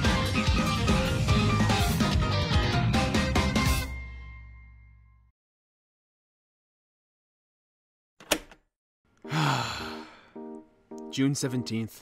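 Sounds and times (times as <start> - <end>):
man sighing: 9.3 - 10.4.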